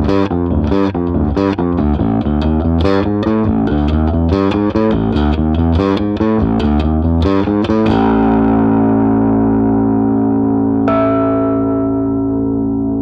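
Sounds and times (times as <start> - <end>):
overdriven electric bass guitar: 0.0 - 13.0.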